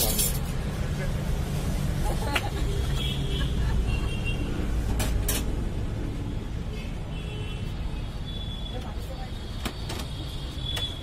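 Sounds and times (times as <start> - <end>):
street traffic rumbling: 0.0 - 11.0.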